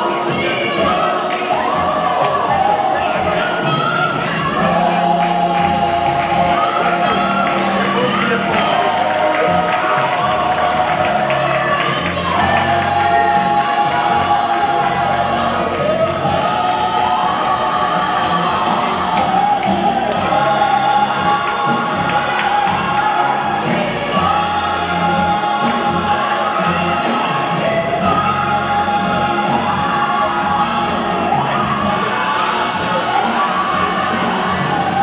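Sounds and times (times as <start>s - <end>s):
gospel choir singing: 0.0s - 35.0s.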